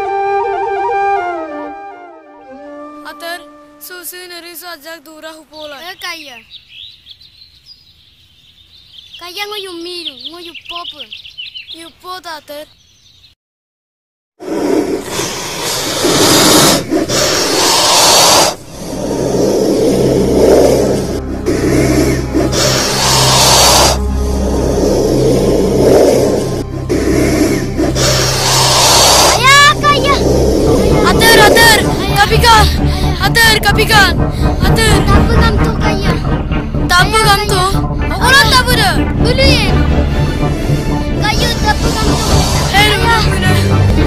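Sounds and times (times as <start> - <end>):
sliding melody: 0.0 - 4.1, 18.7 - 44.0
dramatic music with low drone: 18.6 - 44.0.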